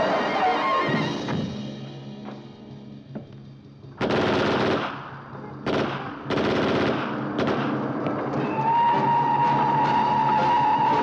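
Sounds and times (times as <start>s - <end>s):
automatic gunfire bursts: 4.0s - 7.8s.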